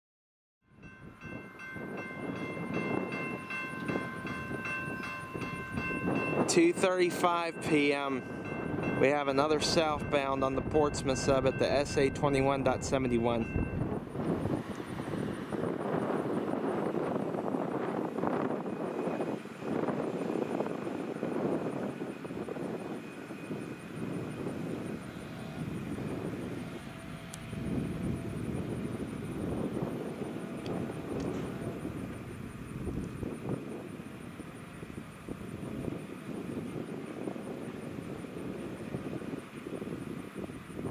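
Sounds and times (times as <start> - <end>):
railroad crossing bell ringing: 0.7 - 14.3, 15.1 - 40.7.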